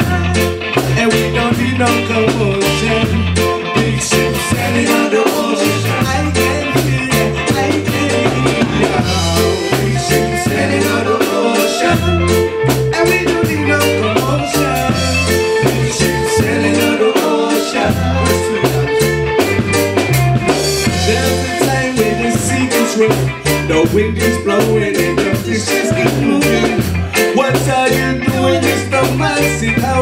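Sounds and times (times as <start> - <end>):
reggae band playing: 0.0 - 30.0
drum rimshots: 4.5 - 23.4.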